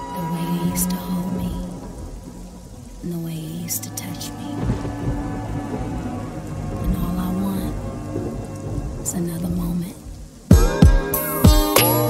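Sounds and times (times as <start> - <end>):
rolling thunder: 0.0 - 11.4
rain: 0.0 - 12.0.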